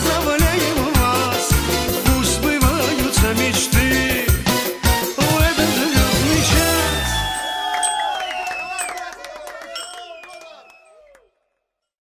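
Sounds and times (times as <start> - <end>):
latin band music: 0.0 - 7.5
people shouting and whooping: 6.7 - 11.3.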